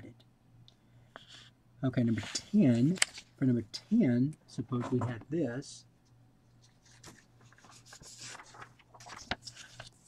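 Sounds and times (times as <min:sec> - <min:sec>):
low steady hum: 0:00.0 - 0:10.0
paper scratching: 0:06.8 - 0:10.0.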